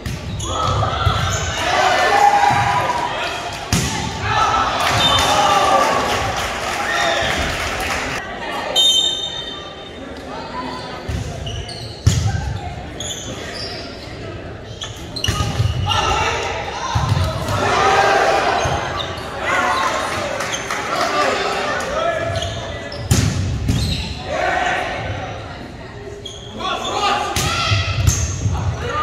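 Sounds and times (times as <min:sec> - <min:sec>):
players and spectators shouting: 0:00.4 - 0:08.8, 0:15.8 - 0:22.8, 0:24.2 - 0:25.6.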